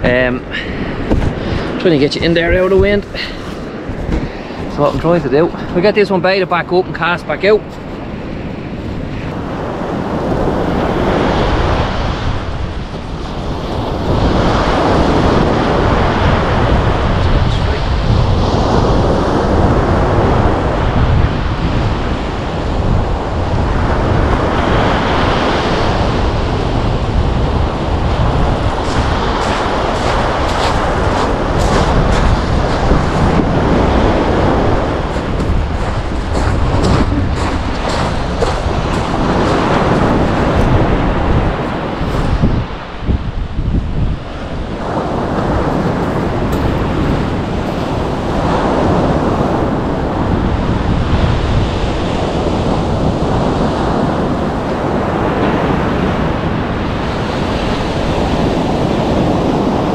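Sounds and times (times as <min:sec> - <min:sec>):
wind buffeting microphone: 0:00.0 - 0:59.9
surf breaking on beach: 0:07.0 - 0:59.9.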